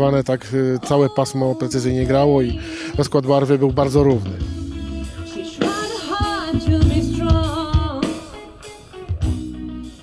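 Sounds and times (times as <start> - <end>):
electric guitar: 0.0 - 10.0
bass: 1.5 - 10.0
person singing: 4.4 - 9.2.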